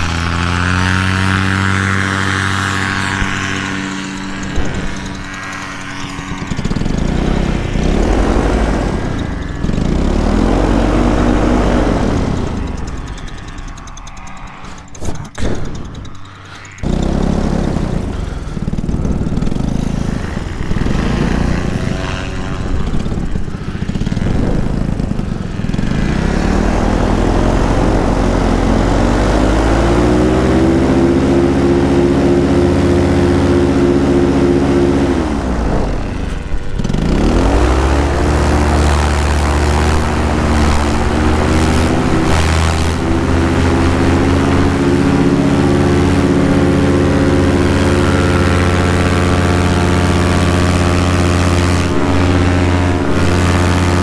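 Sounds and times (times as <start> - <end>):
paramotor engine droning: 0.0 - 54.0.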